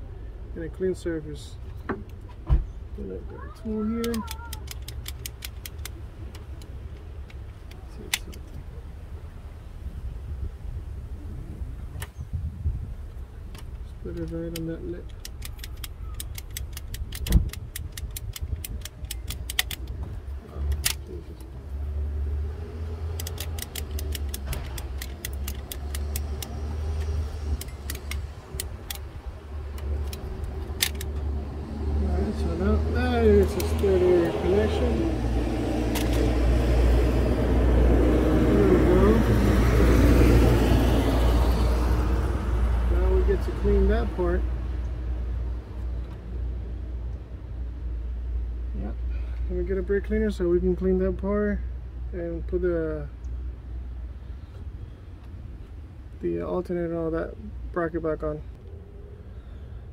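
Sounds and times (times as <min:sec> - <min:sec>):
low steady rumble: 0:00.0 - 0:59.9
ratchet wrench clicking: 0:04.0 - 0:06.0, 0:14.2 - 0:20.0, 0:23.1 - 0:31.2.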